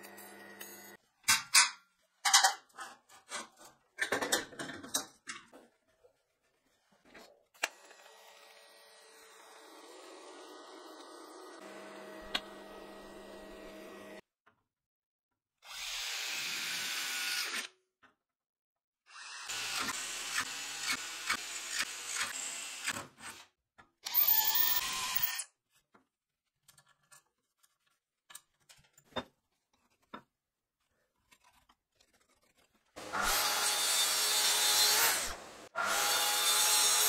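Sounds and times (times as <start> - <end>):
electric drill boring through metal: 15.7 - 17.7, 19.1 - 23.0, 24.0 - 25.5, 33.0 - 37.0.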